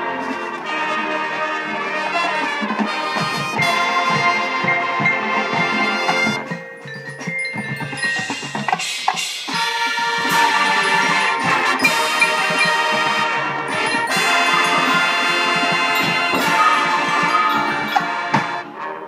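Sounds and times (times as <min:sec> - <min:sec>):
drums: 0:00.0 - 0:19.0
marching band playing: 0:00.0 - 0:19.0
mallet percussion: 0:02.8 - 0:18.9.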